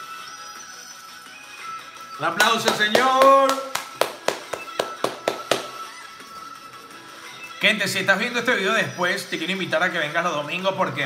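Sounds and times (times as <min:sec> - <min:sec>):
background music: 0:00.0 - 0:11.0
hand claps: 0:02.4 - 0:06.0.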